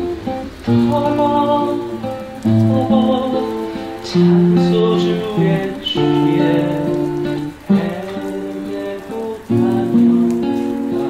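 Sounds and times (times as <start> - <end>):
acoustic guitar fingerpicked: 0.0 - 11.0.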